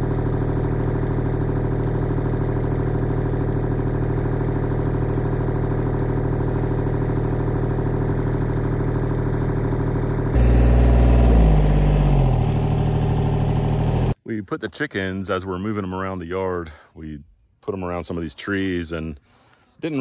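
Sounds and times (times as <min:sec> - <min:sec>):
tractor engine idling: 0:00.0 - 0:14.2.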